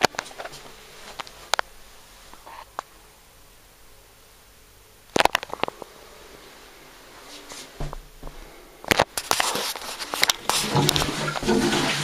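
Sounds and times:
toilet flushing water rushing: 10.5 - 12.0.

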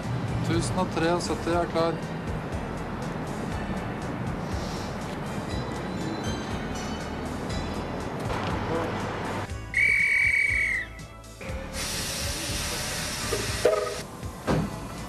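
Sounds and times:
shrill whistle blast: 9.7 - 11.0
hiss of air: 11.7 - 14.0.

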